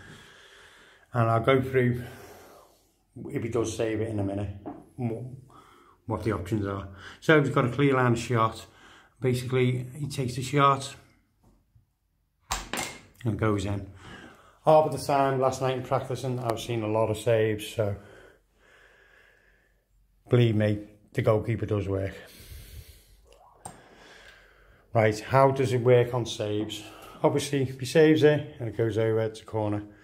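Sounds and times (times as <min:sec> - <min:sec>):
man breathing: 0:00.0 - 0:01.1, 0:02.0 - 0:03.1, 0:05.4 - 0:06.1, 0:08.7 - 0:09.2, 0:13.9 - 0:14.7, 0:17.9 - 0:20.2, 0:22.2 - 0:24.9.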